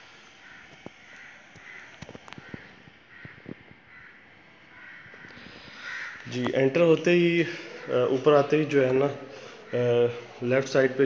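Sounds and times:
crows cawing: 0:00.2 - 0:06.6, 0:07.4 - 0:10.4.

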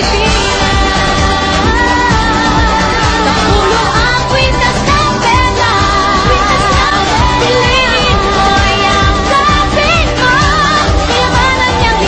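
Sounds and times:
dense backing track: 0:00.0 - 0:12.0
person singing pop song: 0:00.0 - 0:12.0.

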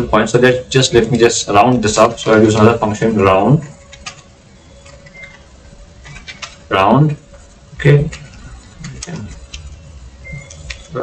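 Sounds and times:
thin steady hum: 0:00.0 - 0:11.0
computer keyboard and mouse clicks: 0:03.9 - 0:05.4, 0:06.0 - 0:06.6.

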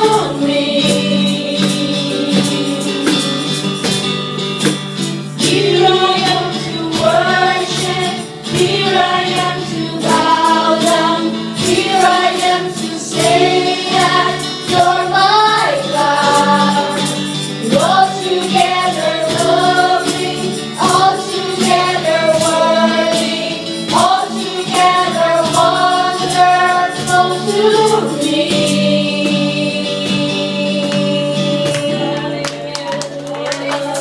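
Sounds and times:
women singing: 0:00.0 - 0:03.9, 0:05.4 - 0:34.0
acoustic and electric guitar: 0:00.0 - 0:34.0
cajon beat: 0:00.0 - 0:34.0
keyboard: 0:00.0 - 0:34.0.

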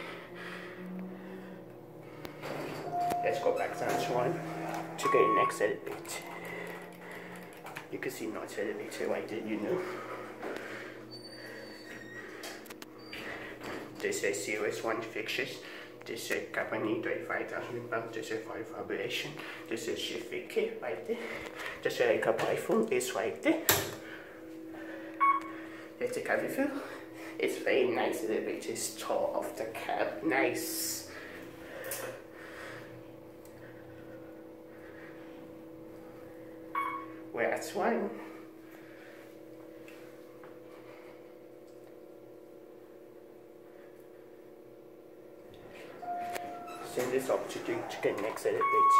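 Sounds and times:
steady low hum: 0:00.0 - 0:48.9
elevator doors sliding shut: 0:02.3 - 0:07.4, 0:46.0 - 0:48.5
short beep: 0:02.9 - 0:04.0, 0:05.0 - 0:05.6, 0:25.2 - 0:25.5, 0:36.8 - 0:37.1, 0:46.0 - 0:46.7, 0:48.6 - 0:48.9.

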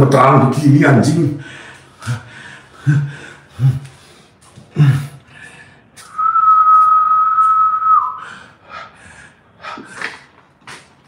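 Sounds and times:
high whistle: 0:06.0 - 0:08.4.

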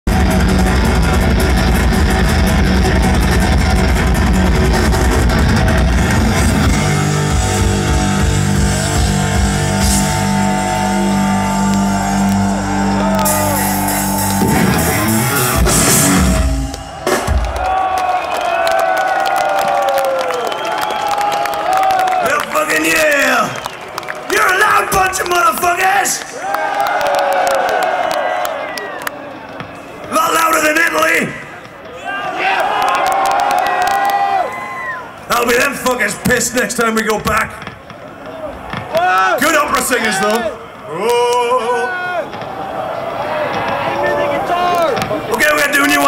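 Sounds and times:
crowd cheering: 0:00.0 - 0:46.0
heavy metal band playing live: 0:00.1 - 0:17.7.

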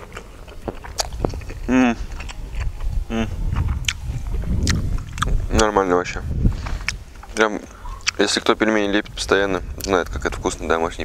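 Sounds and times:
mouth clicks: 0:00.0 - 0:05.7, 0:06.6 - 0:08.2
wind noise on microphone: 0:00.0 - 0:11.0
man murmuring: 0:01.6 - 0:02.1, 0:03.1 - 0:03.4.

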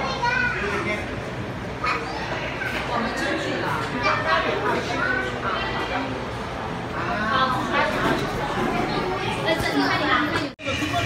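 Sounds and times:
child's high voice: 0:00.0 - 0:00.8, 0:01.8 - 0:02.9
murmur of indoor crowd: 0:00.0 - 0:11.0.

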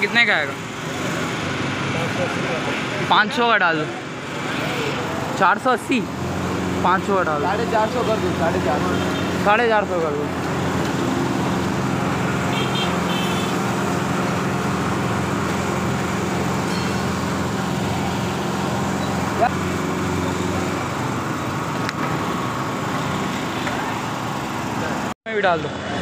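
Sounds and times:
fuel pump humming: 0:00.0 - 0:25.2.

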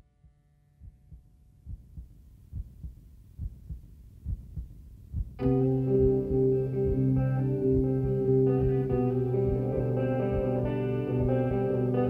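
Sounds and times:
heartbeat thumps: 0:00.8 - 0:09.6, 0:10.3 - 0:11.4.

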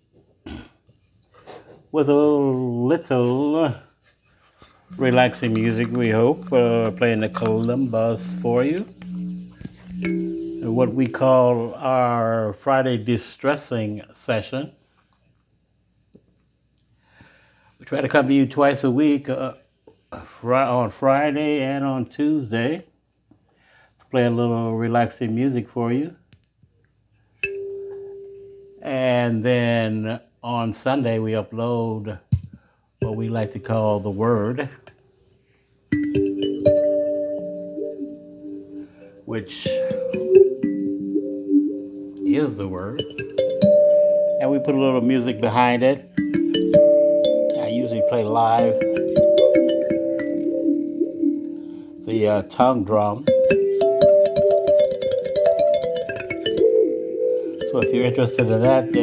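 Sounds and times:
kalimba note ringing: 0:04.9 - 0:11.9, 0:35.9 - 0:52.1, 0:53.2 - 0:59.0.

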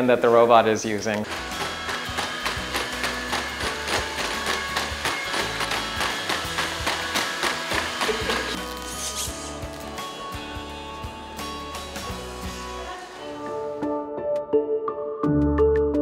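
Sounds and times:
background music with quick beat: 0:01.2 - 0:12.8.

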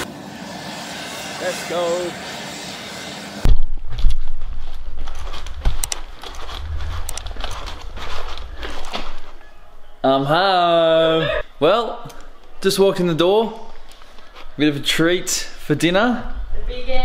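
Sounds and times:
jet aircraft noise: 0:05.1 - 0:09.5.

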